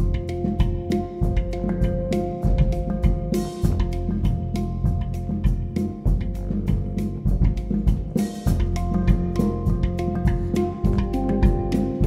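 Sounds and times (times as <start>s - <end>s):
handpan notes ringing: 0.0s - 6.8s, 8.4s - 12.0s
double bass: 0.0s - 12.0s
drum kit busy beat: 0.0s - 12.0s.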